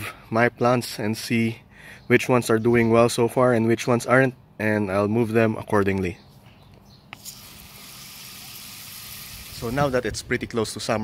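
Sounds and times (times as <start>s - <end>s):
hose spraying water: 7.2s - 10.1s.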